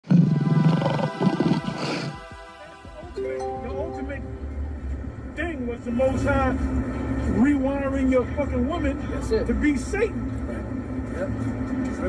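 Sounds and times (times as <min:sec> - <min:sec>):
intro music: 0:02.2 - 0:05.7.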